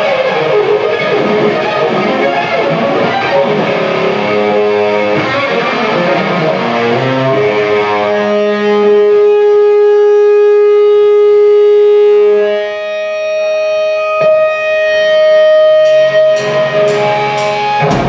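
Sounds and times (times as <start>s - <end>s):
rock band playing: 0.0s - 8.7s, 14.3s - 18.0s
electric guitar sustained notes: 0.0s - 18.0s.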